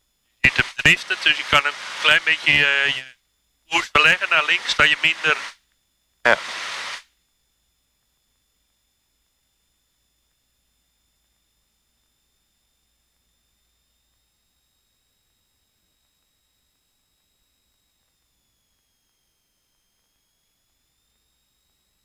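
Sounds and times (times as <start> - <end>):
intercom hiss burst: 0.4 - 3.1, 3.7 - 5.6, 6.3 - 7.0.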